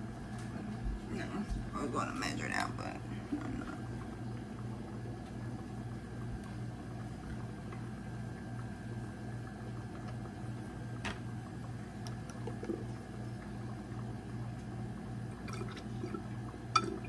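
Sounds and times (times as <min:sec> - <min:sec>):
pulsing low machine hum: 0:00.0 - 0:17.0.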